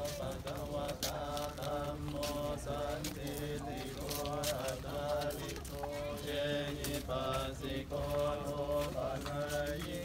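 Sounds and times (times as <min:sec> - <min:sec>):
chanting: 0:00.0 - 0:10.0.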